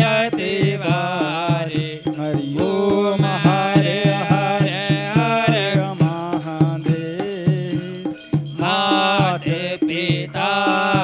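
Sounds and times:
hand drum beat: 0:00.0 - 0:11.0
people singing devotional song: 0:00.0 - 0:11.0.

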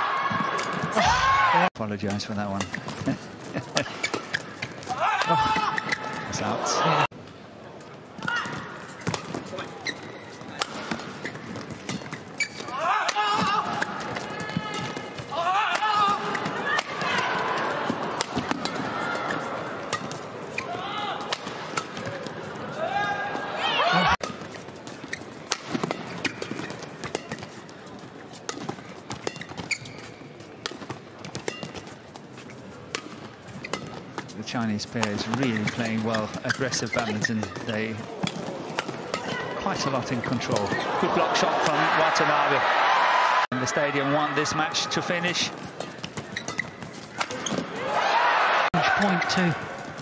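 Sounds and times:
crowd shouting: 0:04.9 - 0:07.1, 0:12.7 - 0:19.8, 0:22.6 - 0:24.2, 0:40.8 - 0:45.0, 0:47.7 - 0:49.7.

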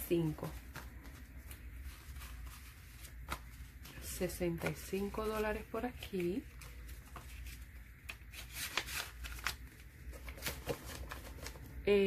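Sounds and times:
banknotes rustling: 0:00.1 - 0:12.0.

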